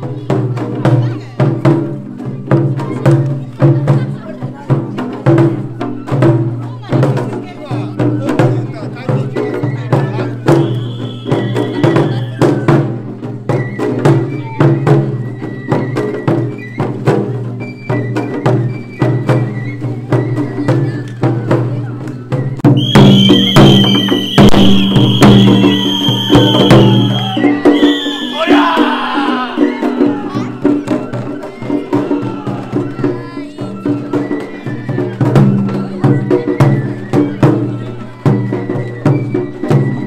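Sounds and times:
taiko drum beating: 0.0s - 40.0s
high whistle-like notes: 10.5s - 12.5s, 22.7s - 30.1s.

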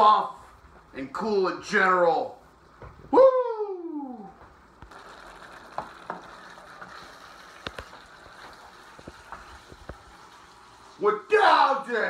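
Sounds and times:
food sizzling in skillet: 4.9s - 11.0s.

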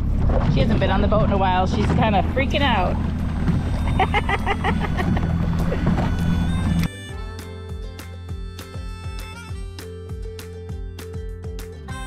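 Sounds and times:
water splashing along hull: 0.0s - 7.8s
boat motor drone: 0.0s - 10.1s
music: 1.8s - 12.0s
person laughing: 3.8s - 6.0s.

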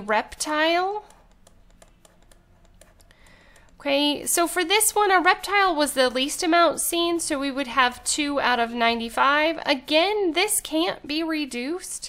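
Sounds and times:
stylus tapping on tablet: 0.4s - 4.1s.

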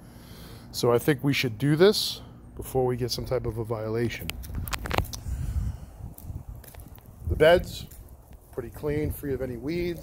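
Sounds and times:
footsteps outdoors: 3.2s - 10.0s
low rumble on microphone: 4.3s - 10.0s.

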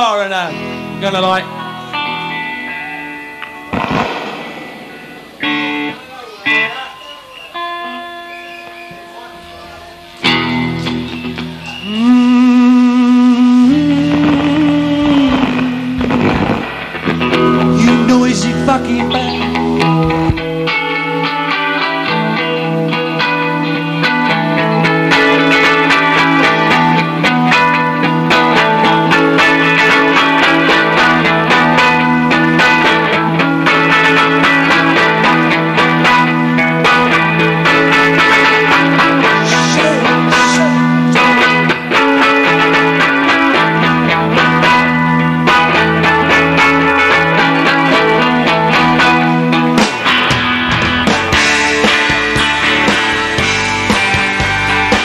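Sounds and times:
electric guitar notes: 0.0s - 55.0s
rock band with drums: 0.0s - 55.0s.

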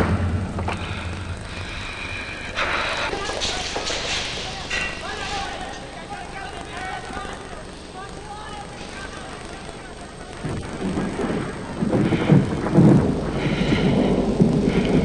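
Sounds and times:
low rumble: 0.0s - 3.2s, 10.3s - 15.0s.

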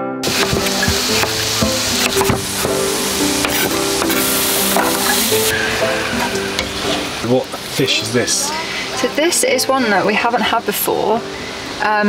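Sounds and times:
kitchen utensils knocking: 0.2s - 7.3s
food sizzling in a pan: 0.2s - 12.0s.

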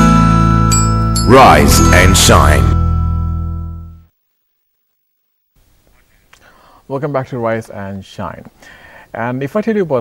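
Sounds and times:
man speaking: 1.3s - 2.8s
man breathing: 6.2s - 6.9s, 8.6s - 9.2s.

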